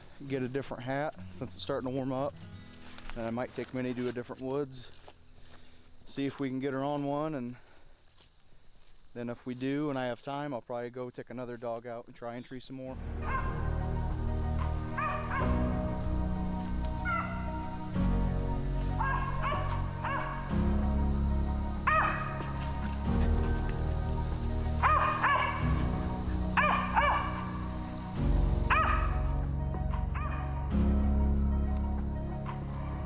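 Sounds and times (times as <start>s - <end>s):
background music with chords: 12.9s - 33.0s
dog barking: 13.2s - 13.7s, 14.6s - 15.6s, 17.0s - 17.6s, 19.0s - 20.5s, 21.8s - 23.8s, 24.8s - 25.9s, 26.5s - 27.6s, 28.7s - 29.3s, 29.9s - 30.6s.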